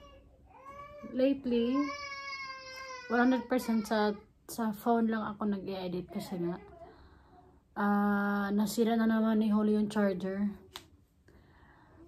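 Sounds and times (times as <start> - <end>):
woman talking: 1.0 - 2.0, 3.1 - 6.8, 7.8 - 10.7.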